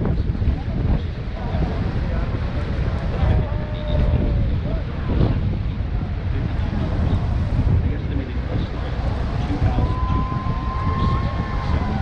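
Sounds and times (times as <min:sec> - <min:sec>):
boat running noise: 0:00.0 - 0:12.0
faint passenger voices: 0:00.0 - 0:12.0
wind buffeting microphone: 0:00.0 - 0:12.0
waterfall rushing: 0:05.7 - 0:12.0.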